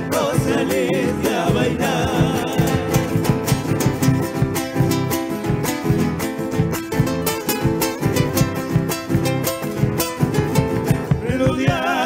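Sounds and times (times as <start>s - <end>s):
acoustic guitars strumming: 0.0s - 12.0s.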